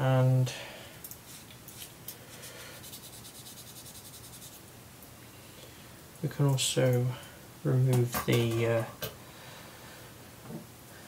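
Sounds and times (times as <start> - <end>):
hands handling small parts: 1.0 - 2.2.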